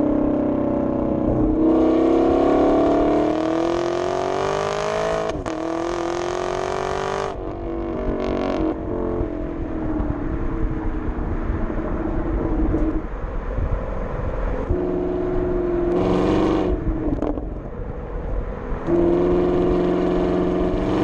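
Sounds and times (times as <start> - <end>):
car exhaust revving: 0.0 - 13.0, 14.7 - 17.7, 18.8 - 21.0
exhaust burble on overrun: 14.6 - 18.0, 18.8 - 21.0.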